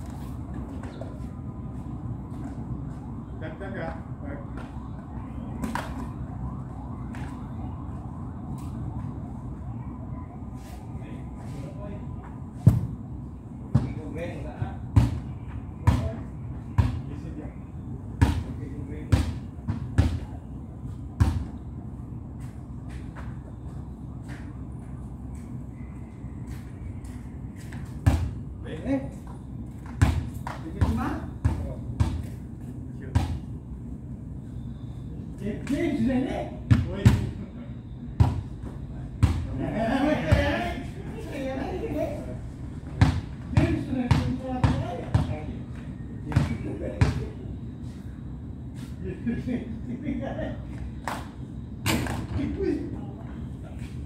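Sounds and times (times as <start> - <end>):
basketball bouncing on concrete: 29.8 - 32.3, 42.9 - 45.4.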